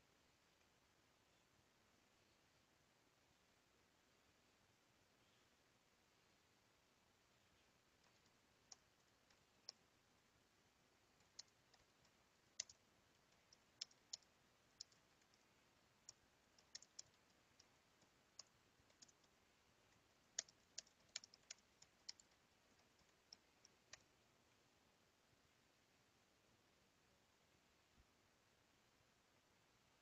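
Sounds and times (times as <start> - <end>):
computer keys clicking: 7.9 - 9.9, 11.0 - 24.2.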